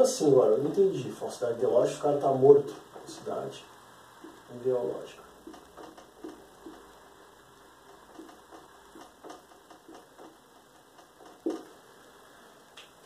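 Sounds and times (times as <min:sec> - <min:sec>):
marker writing on whiteboard: 0:11.0 - 0:11.7.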